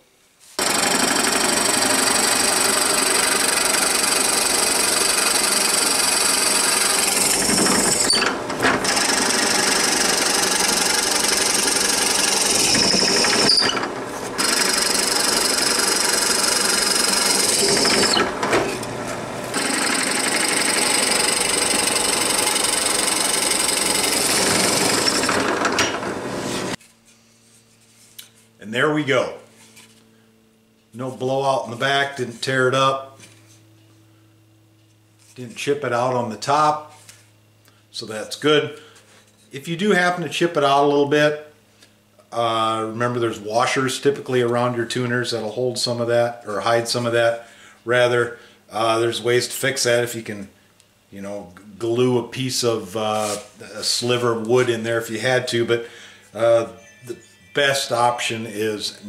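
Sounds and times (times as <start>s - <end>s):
drill press boring wood: 0.6s - 26.8s.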